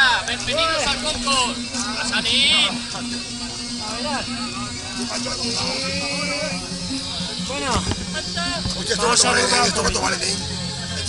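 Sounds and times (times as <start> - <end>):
background music with low notes: 0.0 - 11.0
people talking: 0.0 - 11.0.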